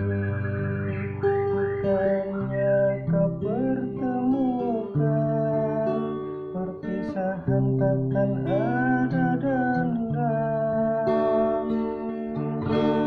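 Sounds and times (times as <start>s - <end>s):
acoustic guitar strumming chords: 0.0s - 13.0s
man singing: 1.8s - 11.8s.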